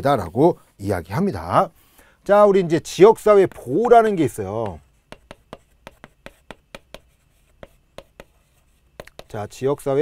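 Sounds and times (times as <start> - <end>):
chalk tapping on chalkboard: 3.5 - 9.6.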